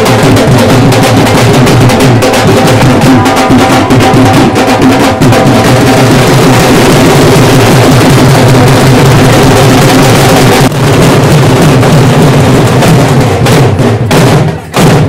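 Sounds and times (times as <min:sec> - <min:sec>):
dhol drums beaten hard: 0:00.0 - 0:15.0.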